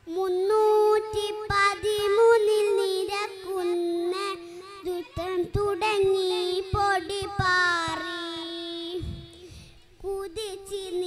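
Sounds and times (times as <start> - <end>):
girl singing into microphone: 0.0 - 11.0.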